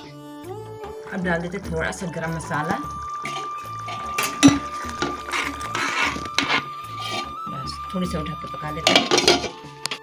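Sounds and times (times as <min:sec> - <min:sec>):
metal spoon clinking in steel pan: 0:08.8 - 0:09.6.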